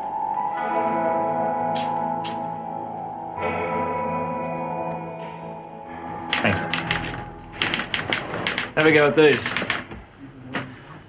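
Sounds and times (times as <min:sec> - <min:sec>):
typewriter keys clattering: 0:06.1 - 0:10.0.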